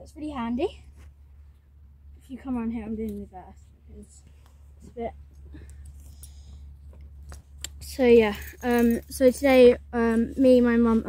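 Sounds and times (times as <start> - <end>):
steady low rumble: 0.0 - 11.0
metal buckle clicking and rattling: 5.3 - 9.6.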